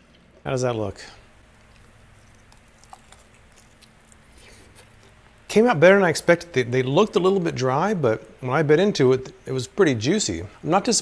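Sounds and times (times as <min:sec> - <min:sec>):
man chewing: 0:01.4 - 0:05.5.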